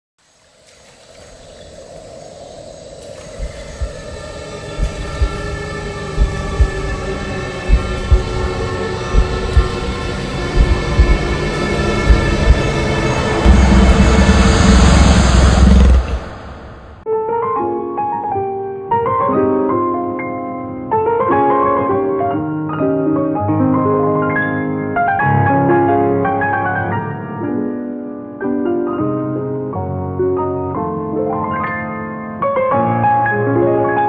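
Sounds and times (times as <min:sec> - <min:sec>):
sustained synth chords: 0:01.7 - 0:17.0
low drum hits: 0:03.3 - 0:17.0.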